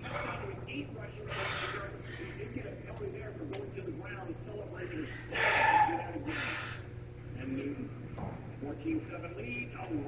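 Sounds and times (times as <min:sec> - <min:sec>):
person breathing hard: 0:05.1 - 0:07.0.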